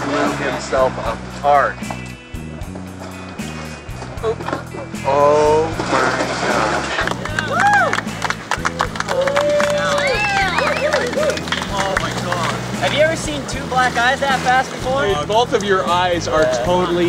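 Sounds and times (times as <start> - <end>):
background music with bass line: 0.0 - 17.0
young men whooping and cheering: 7.2 - 11.8.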